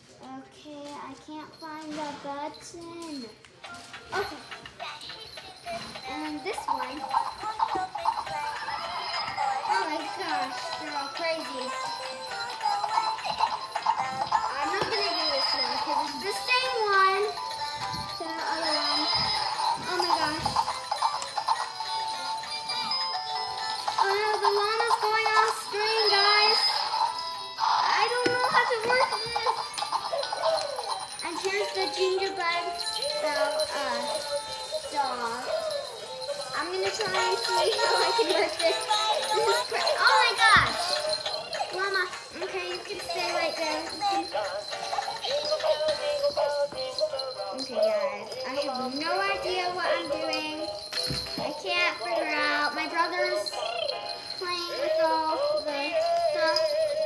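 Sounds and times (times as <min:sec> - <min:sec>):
small bells jingling: 0:00.1 - 0:57.0
toy playing song through small speaker: 0:03.0 - 0:57.0.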